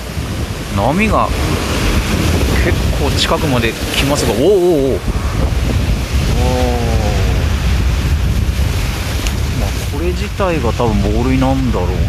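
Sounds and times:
sea waves washing over boulders: 0.0 - 12.0
wind rumble on microphone: 0.0 - 12.0
man's wordless call: 6.2 - 7.7.

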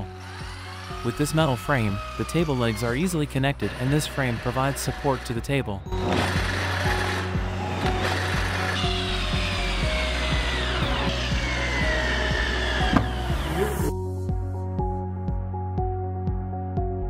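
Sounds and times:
electric drill whining: 0.0 - 5.4, 6.0 - 13.9
background music: 0.0 - 17.0.

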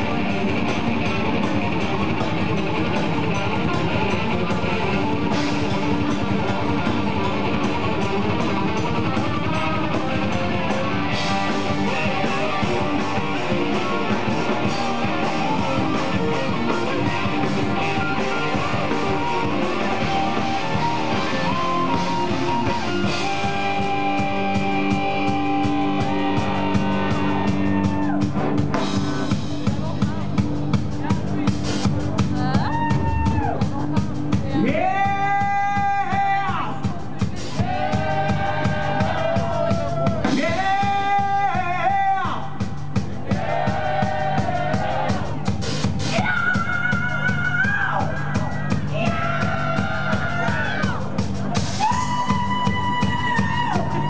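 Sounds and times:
distorted electric guitars: 0.0 - 41.9, 42.5 - 54.0
bass guitar: 0.0 - 54.0
drum kit beat: 0.0 - 54.0
heavy metal band playing: 0.0 - 54.0.

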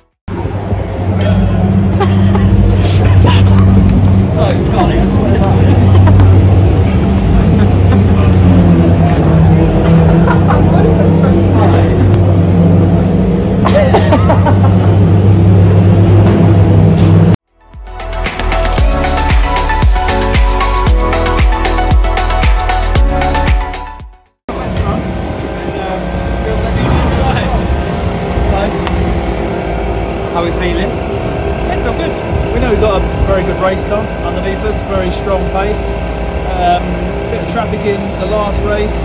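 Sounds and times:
low engine hum: 0.0 - 17.4, 24.5 - 39.0
indistinct voices: 24.5 - 38.7.

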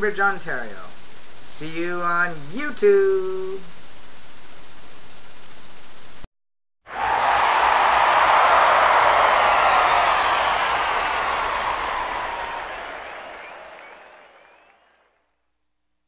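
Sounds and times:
crowd applause: 6.9 - 15.1.

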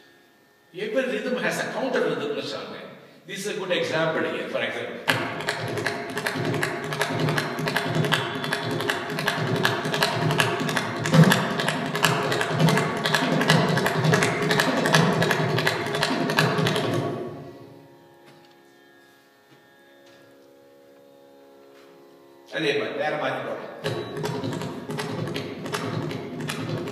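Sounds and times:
hand drum rapid strokes: 5.1 - 17.3, 23.8 - 26.9.

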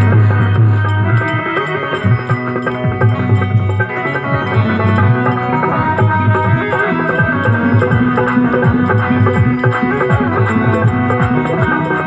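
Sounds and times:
dholak drum strokes: 0.0 - 12.0
electronic keyboard melody: 0.0 - 12.0.

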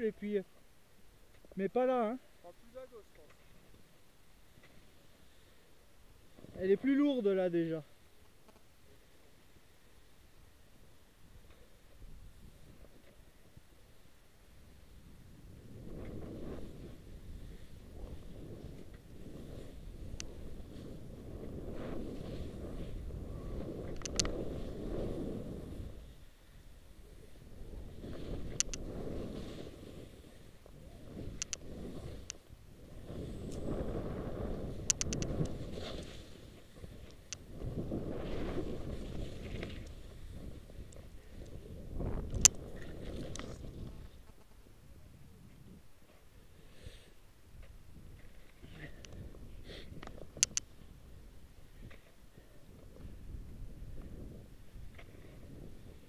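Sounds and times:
skis swooshing through powder snow: 14.5 - 44.2
wind rush on microphone: 14.5 - 45.9, 47.5 - 56.0
sharp clicks and knocks: 23.9 - 24.3, 34.9 - 35.5, 50.0 - 50.7.

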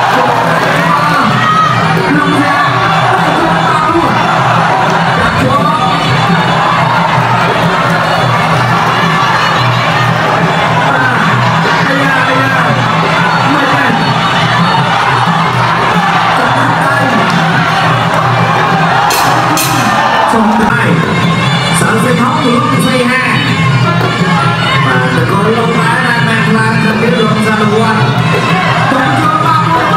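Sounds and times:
crowd cheering and shouting: 0.0 - 29.9
traditional ringside music: 0.2 - 29.9.

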